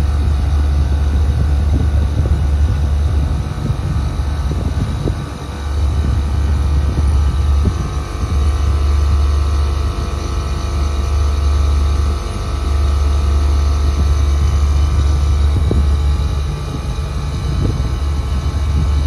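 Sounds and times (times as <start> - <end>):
air conditioner unit humming: 0.0 - 19.0.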